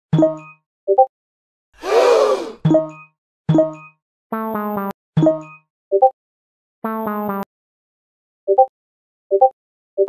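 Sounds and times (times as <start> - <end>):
groaning voice-like sound effect: 1.8 - 2.6.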